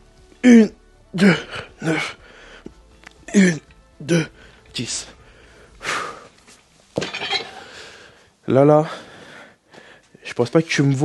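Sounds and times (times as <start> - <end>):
metallic clank of weights set down: 7.0 - 7.7.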